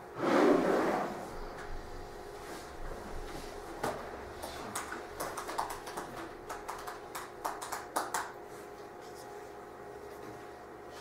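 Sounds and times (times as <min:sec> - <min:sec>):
typing on laptop keyboard: 0:04.4 - 0:08.3.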